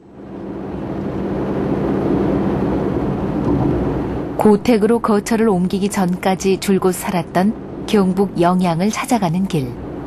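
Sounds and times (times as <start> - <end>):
car engine hum: 0.0 - 8.8
road and tyre noise: 0.0 - 10.0.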